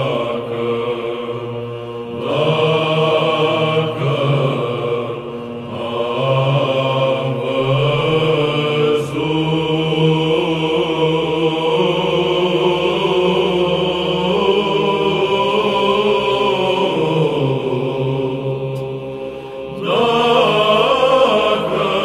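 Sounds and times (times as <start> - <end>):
held vocal drone: 0.0 - 22.0
men's choir chanting: 0.0 - 22.0.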